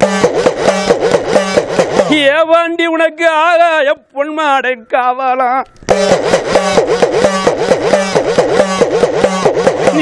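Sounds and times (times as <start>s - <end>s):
hand drum with sliding pitch: 0.0s - 2.2s, 5.9s - 10.0s.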